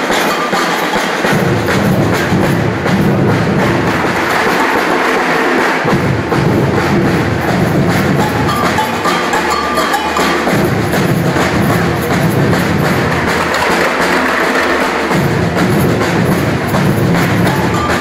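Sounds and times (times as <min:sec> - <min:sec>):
percussion band drumming: 0:00.0 - 0:18.0.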